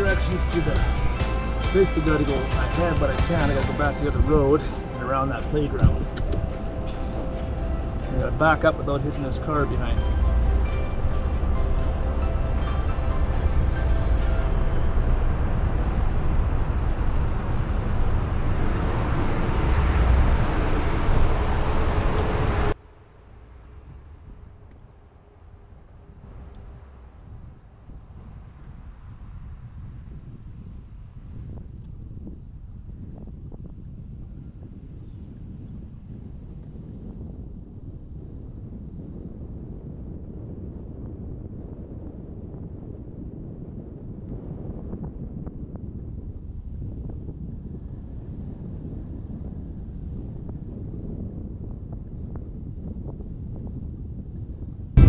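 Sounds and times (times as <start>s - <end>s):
car engine and tyres rumbling: 0.0s - 32.1s
wind on microphone: 0.0s - 55.0s.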